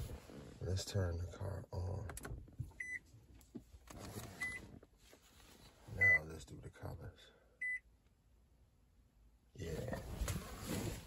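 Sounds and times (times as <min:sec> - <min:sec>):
car warning chime beeping: 0:02.8 - 0:03.0, 0:07.6 - 0:07.9.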